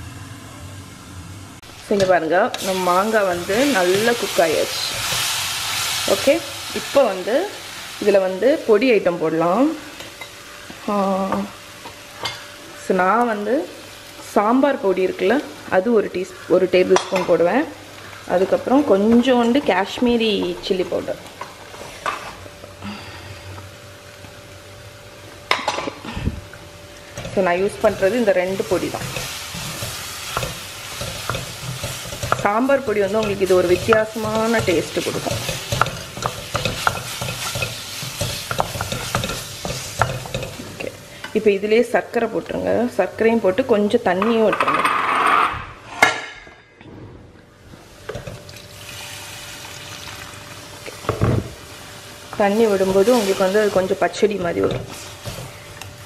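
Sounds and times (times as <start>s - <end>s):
food frying quietly: 0.0s - 44.5s, 47.6s - 56.0s.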